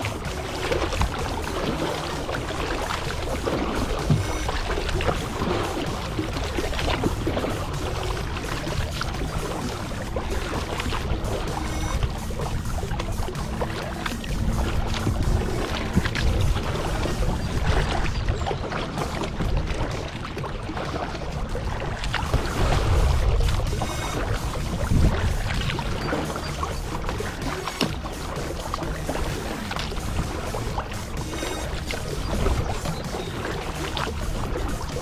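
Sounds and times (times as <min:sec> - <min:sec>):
faint music: 0:00.0 - 0:35.0
paddle strokes splashing: 0:00.0 - 0:35.0
water washing along hull: 0:00.0 - 0:35.0
wind rumble on microphone: 0:00.0 - 0:35.0.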